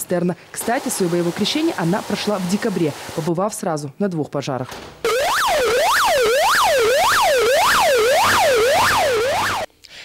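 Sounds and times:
fire truck siren wailing: 5.1s - 9.7s.

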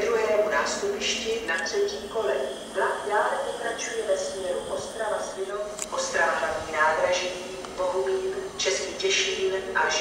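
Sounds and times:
loudspeaker announcement voice: 0.0s - 10.0s.

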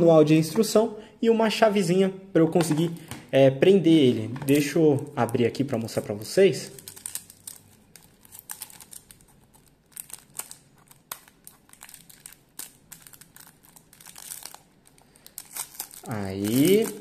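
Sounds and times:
plastic sleeve crinkling: 4.5s - 17.0s.

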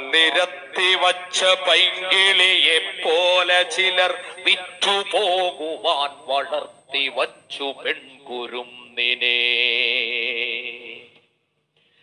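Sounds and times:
person reciting melodic poem: 0.0s - 11.2s.

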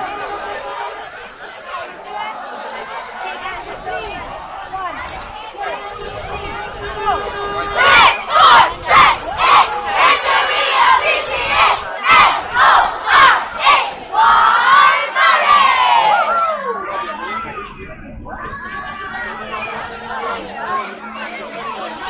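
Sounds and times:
children chanting in rhythm: 7.6s - 17.2s.

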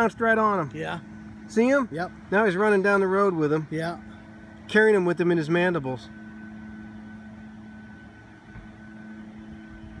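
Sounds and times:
mechanical hum: 0.0s - 10.0s.

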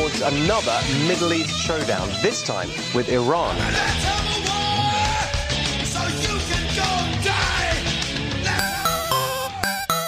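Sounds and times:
rock music with vocals: 0.0s - 8.6s.

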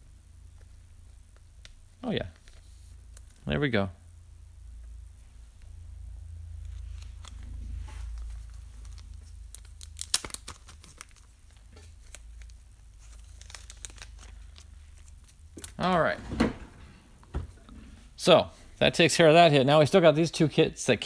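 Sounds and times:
low steady hum: 0.0s - 21.0s
plastic card sleeve crinkling: 6.5s - 16.0s.

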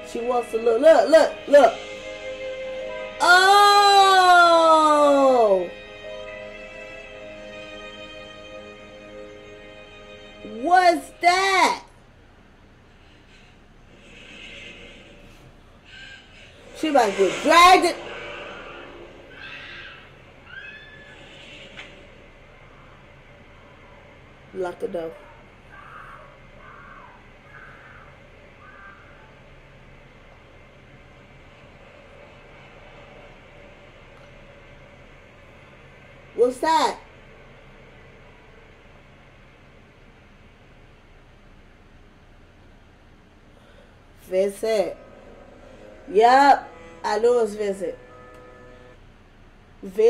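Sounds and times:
low hum: 0.0s - 50.0s.

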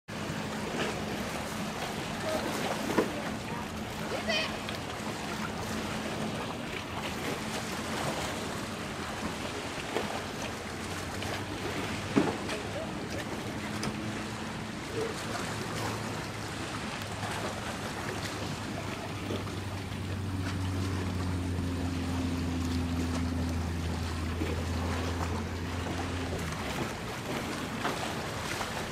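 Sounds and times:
low steady hum: 0.1s - 28.9s
small waves lapping: 0.1s - 28.9s.

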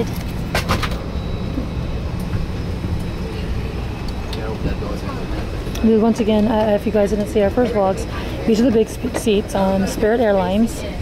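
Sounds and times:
airplane cabin hum: 0.0s - 11.0s
faint passenger voices: 0.0s - 11.0s.

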